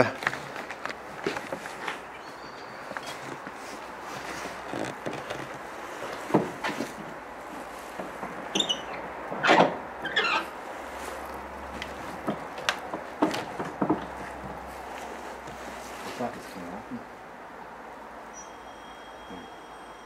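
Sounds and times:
door squeaks: 0:08.5 - 0:10.5, 0:18.3 - 0:19.8.

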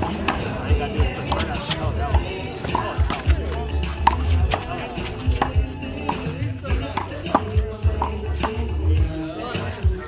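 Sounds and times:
music with heavy bass beat: 0:00.0 - 0:10.0.

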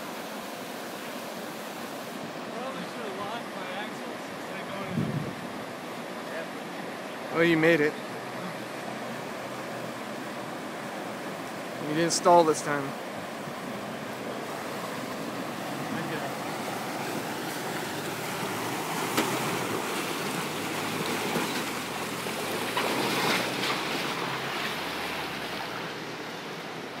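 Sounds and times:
low engine hum: 0:00.0 - 0:27.0
river water rushing and splashing: 0:00.0 - 0:27.0.

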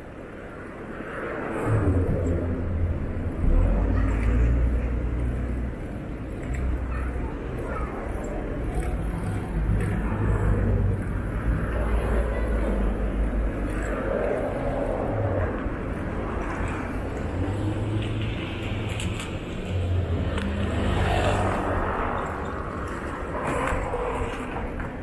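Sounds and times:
wind rumble on microphone: 0:00.0 - 0:06.8, 0:07.4 - 0:25.0
cars driving past: 0:08.3 - 0:25.0.

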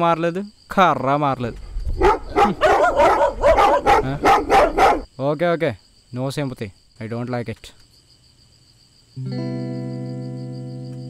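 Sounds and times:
dog barking: 0:02.0 - 0:05.1.

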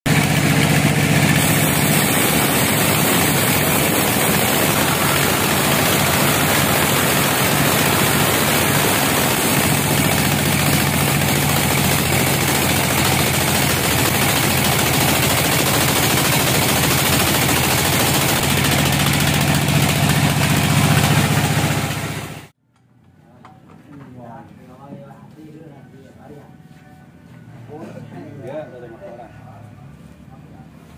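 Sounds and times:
saw drive hum: 0:00.1 - 0:22.4.

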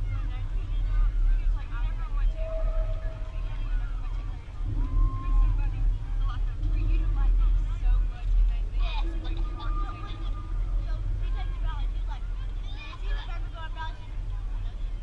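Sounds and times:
distant voices calling out: 0:00.0 - 0:15.0
wind on microphone: 0:00.0 - 0:15.0.

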